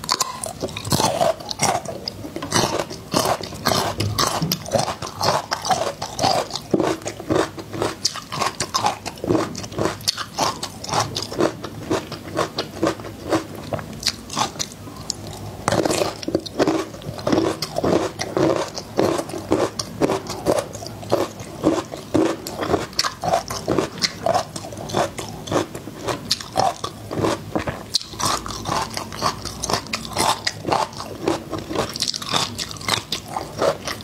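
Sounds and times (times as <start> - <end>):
person chewing garlic: 0.0 - 34.0.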